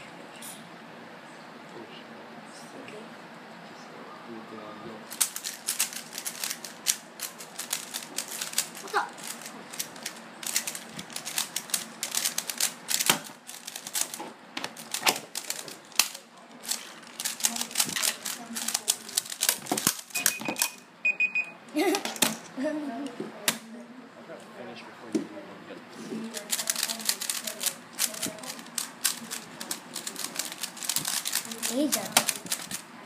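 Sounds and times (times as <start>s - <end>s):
puzzle cubes clicking while turned: 5.1s - 20.7s, 26.3s - 32.8s.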